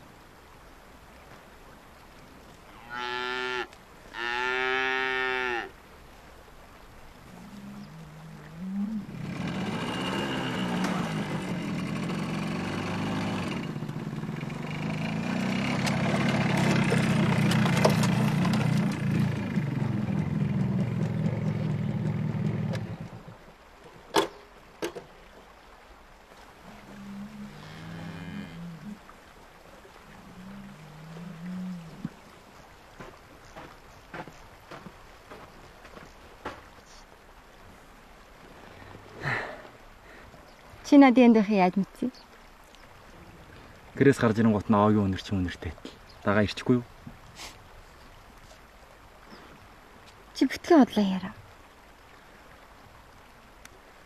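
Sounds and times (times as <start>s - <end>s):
motorcycle engine running: 9.1s - 23.2s
livestock lowing: 30.0s - 32.2s.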